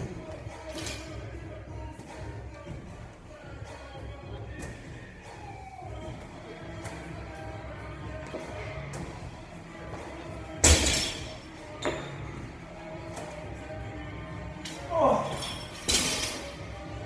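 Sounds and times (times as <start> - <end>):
background music: 0.0 - 17.0.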